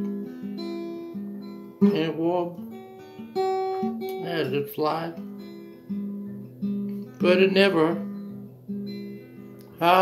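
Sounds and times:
acoustic guitar chords: 0:00.0 - 0:10.0
man singing: 0:01.8 - 0:02.6, 0:07.2 - 0:08.1, 0:09.7 - 0:10.0.

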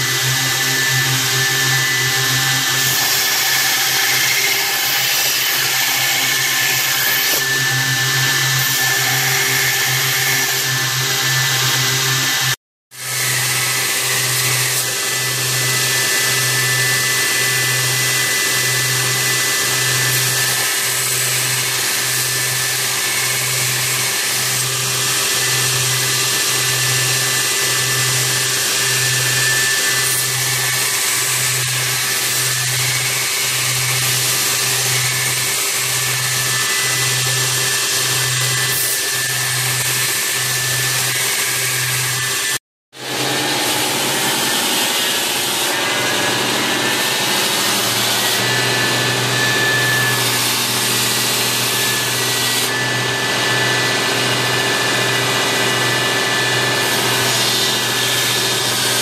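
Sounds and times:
belt grinder grinding metal: 0:00.0 - 0:59.0.

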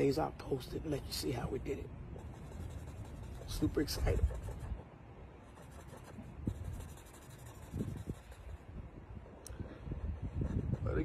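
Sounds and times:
faint pen strokes on board: 0:02.2 - 0:04.9, 0:05.5 - 0:08.6.

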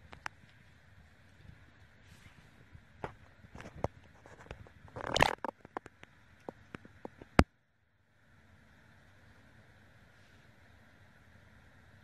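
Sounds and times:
rustling scrape: 0:02.0 - 0:02.7.

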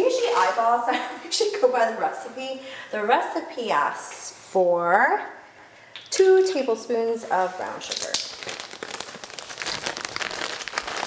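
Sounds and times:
plastic packaging crinkling: 0:07.4 - 0:11.0.

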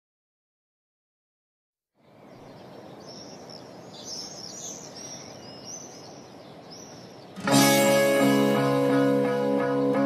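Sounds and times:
outdoor background hiss: 0:01.9 - 0:10.0
birds chirping: 0:02.0 - 0:10.0.

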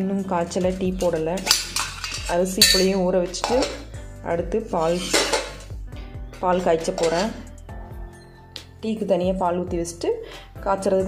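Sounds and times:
music with singing voice: 0:00.0 - 0:11.0
metal lunch box clinking: 0:01.4 - 0:03.9, 0:04.9 - 0:05.7, 0:06.8 - 0:07.5.

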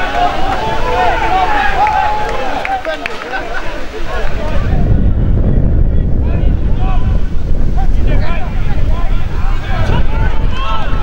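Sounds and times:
distant shouts of players: 0:00.0 - 0:04.8
wind buffeting microphone: 0:00.0 - 0:11.0.

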